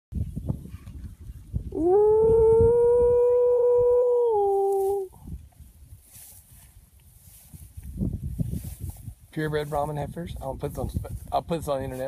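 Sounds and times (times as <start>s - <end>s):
person calling cattle: 1.7s - 5.2s.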